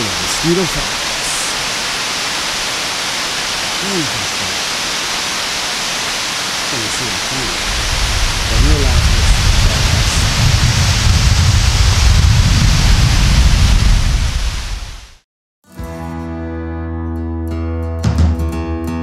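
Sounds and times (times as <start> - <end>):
waterfall rushing roar: 0.0 - 15.2
heavy low rumble: 6.6 - 15.2.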